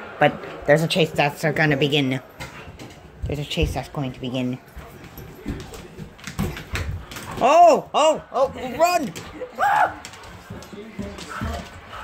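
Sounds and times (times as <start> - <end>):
running footsteps on hard floor: 2.4 - 12.0.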